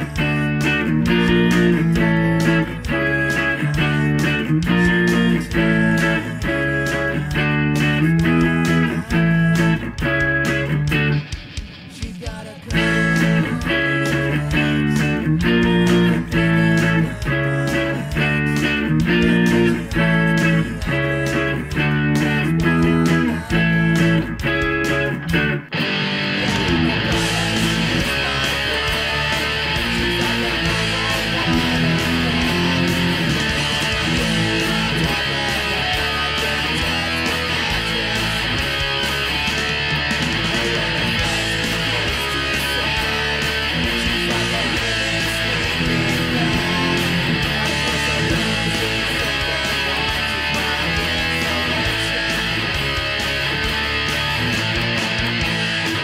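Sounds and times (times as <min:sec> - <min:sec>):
punk rock electric guitar: 0:00.0 - 0:56.0.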